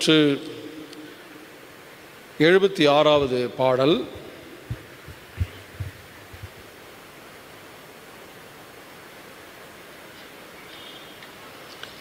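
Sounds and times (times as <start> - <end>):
steady microphone hiss: 0.0 - 12.0.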